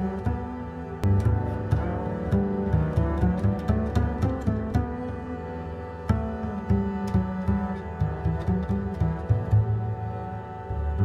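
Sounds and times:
low bass line: 0.0 - 11.0.

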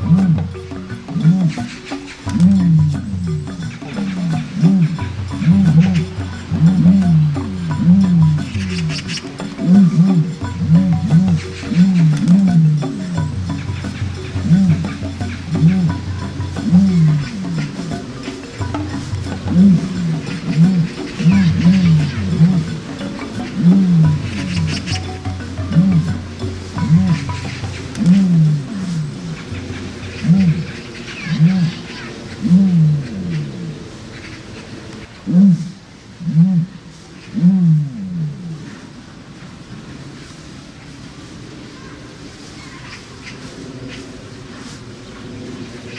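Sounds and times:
ostrich low calls: 0.0 - 34.0.

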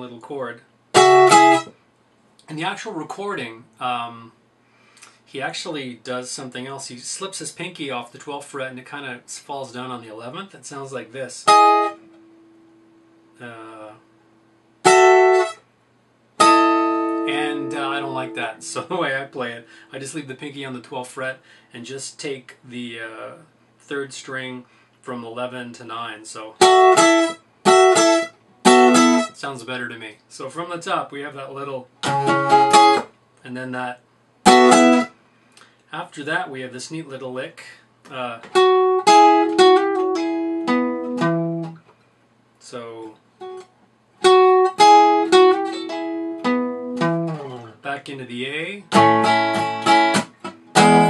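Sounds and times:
acoustic guitar chords strummed: 0.9 - 1.8, 11.5 - 13.1, 14.8 - 15.6, 16.4 - 19.9, 26.6 - 29.4, 32.0 - 33.1, 34.4 - 35.2, 38.4 - 41.8, 44.2 - 47.7, 48.9 - 51.0.

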